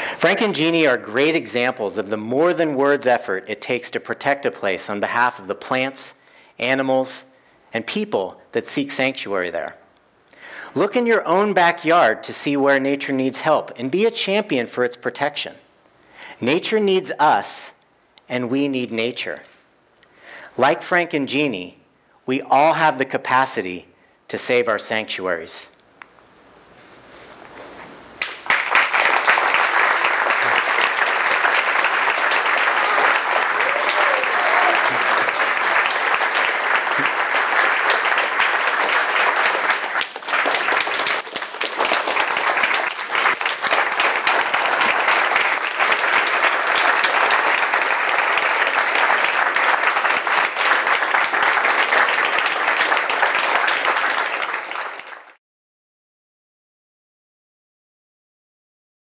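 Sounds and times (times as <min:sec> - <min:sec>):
audience applauding: 0:28.2 - 0:55.4.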